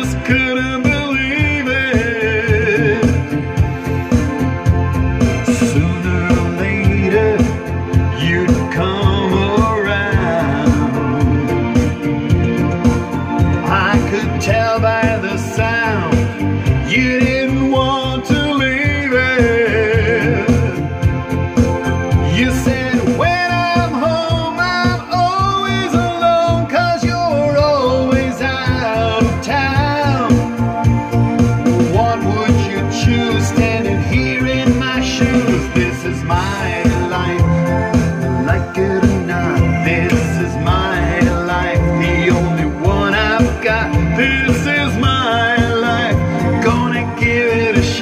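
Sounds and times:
man singing into a microphone: 0:00.0 - 0:03.7, 0:04.5 - 0:12.0, 0:13.5 - 0:21.0, 0:22.2 - 0:30.8, 0:31.7 - 0:48.0
backing music with steady beat: 0:00.0 - 0:48.0.

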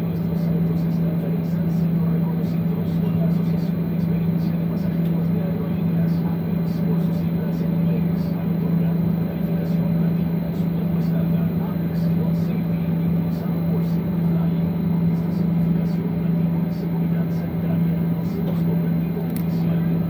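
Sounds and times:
low cabin hum: 0:00.0 - 0:20.0
murmur of voices: 0:00.0 - 0:20.0.

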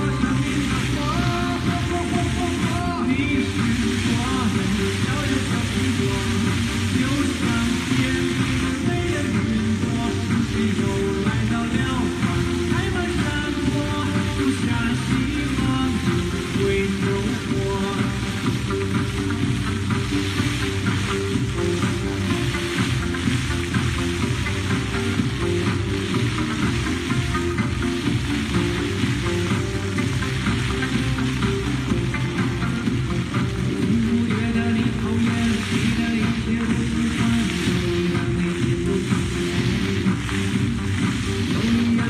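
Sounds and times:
fountain water jets splashing: 0:00.0 - 0:42.0
music playing: 0:00.0 - 0:42.0.

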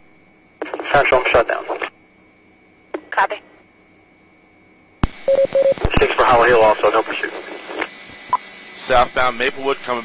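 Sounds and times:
faint radio hiss: 0:05.8 - 0:07.9.

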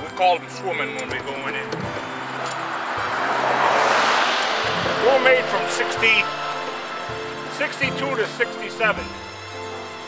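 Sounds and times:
vehicle tyre and road noise: 0:00.0 - 0:10.0.

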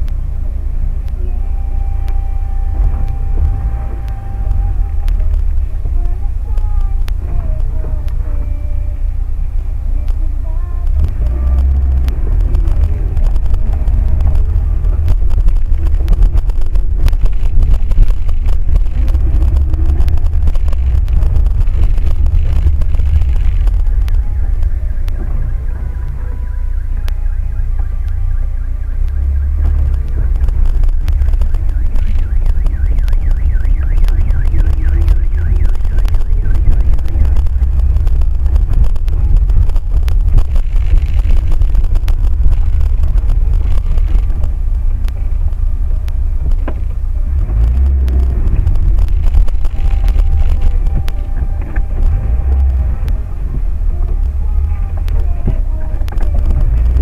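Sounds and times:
car road and engine rumble: 0:00.0 - 0:57.0.

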